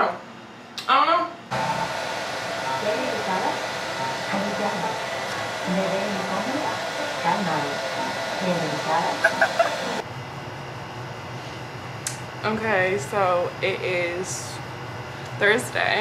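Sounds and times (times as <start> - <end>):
blow dryer running: 1.5 - 10.0
woman's voice: 2.8 - 3.6, 4.2 - 10.0, 12.4 - 14.6, 15.4 - 16.0.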